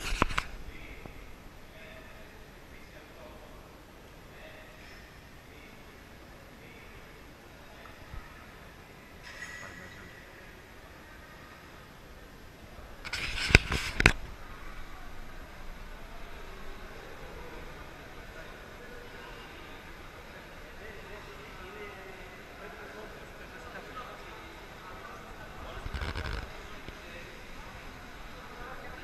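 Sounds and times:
loud scuffle: 0:13.0 - 0:14.3.

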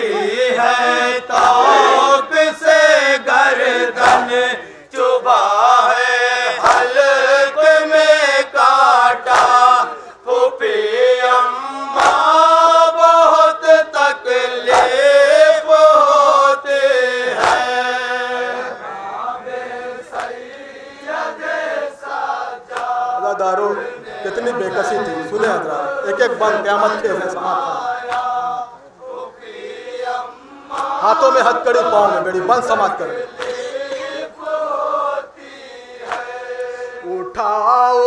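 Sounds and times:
scattered voices: 0:00.0 - 0:16.5
men chanting in unison: 0:00.0 - 0:38.0
chest-beating slaps: 0:04.0 - 0:04.4, 0:06.6 - 0:07.0, 0:09.3 - 0:09.6, 0:12.0 - 0:12.3, 0:14.7 - 0:15.0, 0:17.4 - 0:17.7, 0:28.1 - 0:28.3, 0:33.4 - 0:33.7, 0:36.0 - 0:36.7.

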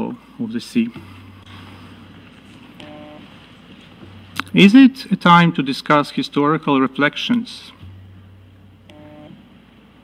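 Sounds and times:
faint electronic tone: 0:02.8 - 0:03.3, 0:08.9 - 0:09.4.

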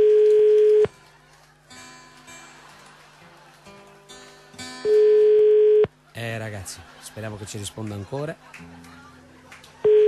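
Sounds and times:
telephone ringing tone: 0:00.0 - 0:00.9, 0:04.8 - 0:05.9
strummed acoustic guitar: 0:01.7 - 0:05.2.

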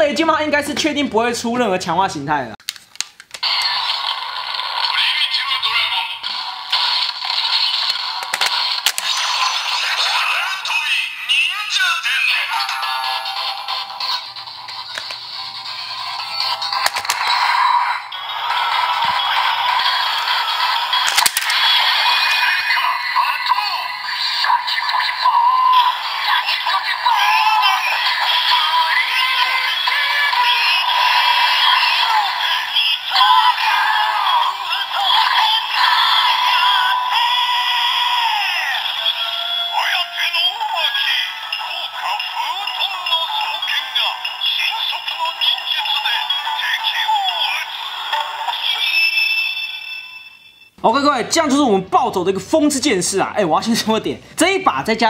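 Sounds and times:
announcer voice with effects: 0:00.0 - 0:02.6, 0:04.8 - 0:06.4, 0:09.0 - 0:20.7, 0:21.5 - 0:49.2, 0:50.8 - 0:55.0
toy speaker music: 0:03.4 - 0:50.8
synthesised singing: 0:09.0 - 0:49.2.

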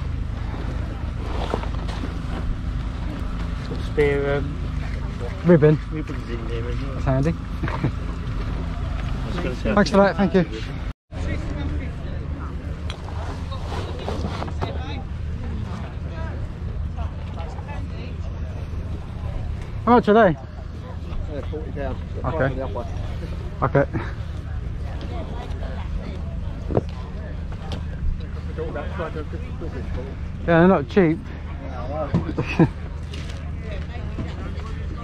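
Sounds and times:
faint voices: 0:00.0 - 0:35.0
low mechanical engine drone: 0:00.0 - 0:35.0.

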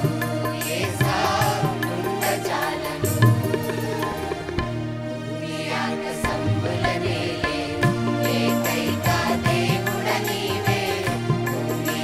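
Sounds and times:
choir singing: 0:00.0 - 0:12.0
instrumental accompaniment with beat: 0:00.0 - 0:12.0.

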